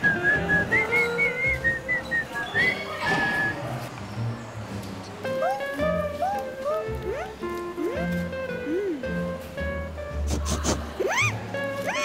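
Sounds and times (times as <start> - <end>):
person whistling a tune: 0.0 - 3.6
background music: 0.0 - 12.0.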